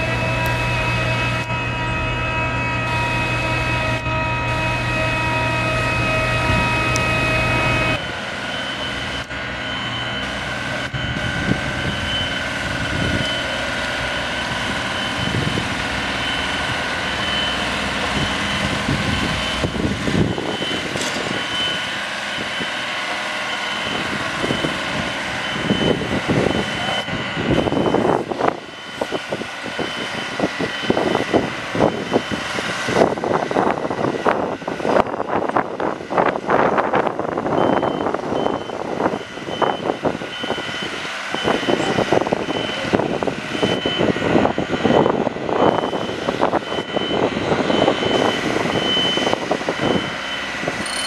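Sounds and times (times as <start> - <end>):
high whining tones: 0.0 - 22.9, 50.8 - 51.0
machinery hum: 0.0 - 29.4.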